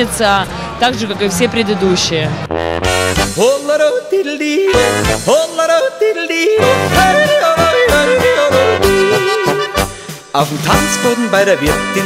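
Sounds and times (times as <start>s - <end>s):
folk music with oom-pah beat: 2.5s - 12.0s
person yodeling: 3.5s - 9.8s.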